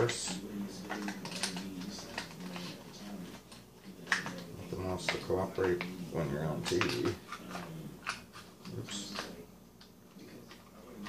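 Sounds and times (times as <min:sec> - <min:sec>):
plastic parts clicking and tapping: 0:06.6 - 0:07.2.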